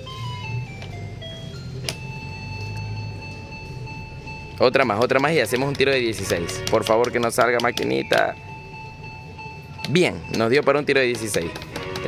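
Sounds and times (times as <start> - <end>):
two-note electronic tone: 0.0 - 5.2, 6.0 - 10.9
slot machine electronic beeps: 0.0 - 12.0.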